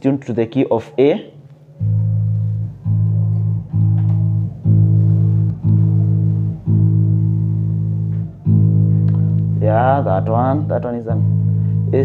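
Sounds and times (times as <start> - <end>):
electric bass notes plucked: 1.3 - 12.0.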